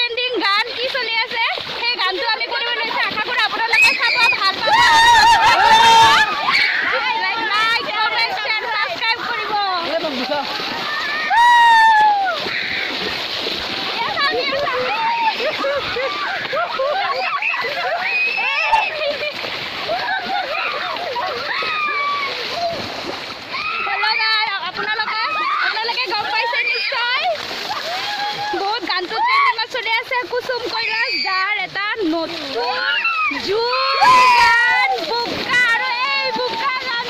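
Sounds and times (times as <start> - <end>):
people splashing in muddy water: 0.0 - 37.0
crowd shouting excitedly: 3.7 - 8.1, 10.4 - 13.0, 14.6 - 22.8, 32.6 - 37.0.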